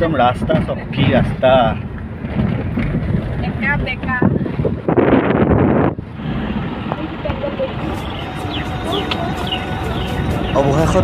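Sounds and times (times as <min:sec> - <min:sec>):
car driving on dirt road: 0:00.0 - 0:11.0.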